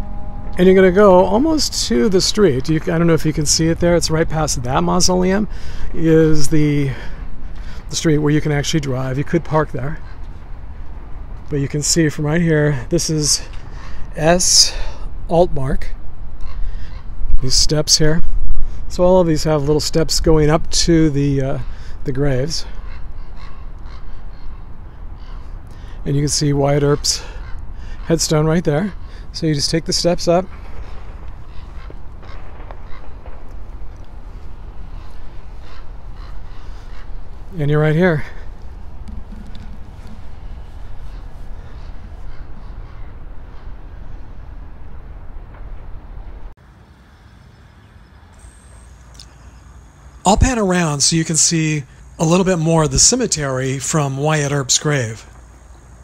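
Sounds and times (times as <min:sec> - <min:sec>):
low outdoor rumble: 0:00.0 - 0:56.0
faint bird calls: 0:09.8 - 0:11.0, 0:12.6 - 0:15.1, 0:16.4 - 0:17.4, 0:21.3 - 0:45.0, 0:46.9 - 0:56.0.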